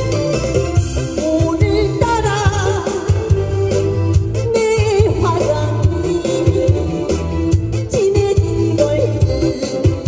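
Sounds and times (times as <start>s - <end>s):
backing track with steady beat: 0.0s - 10.0s
woman singing into microphone: 1.1s - 3.4s, 4.4s - 7.2s, 7.8s - 10.0s.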